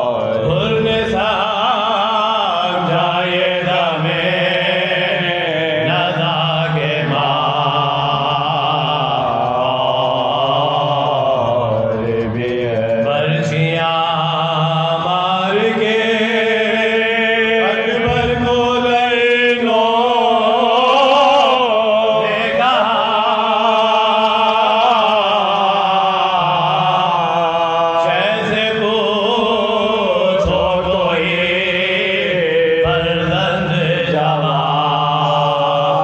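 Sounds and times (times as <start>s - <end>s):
man chanting an elegy: 15.5s - 20.9s.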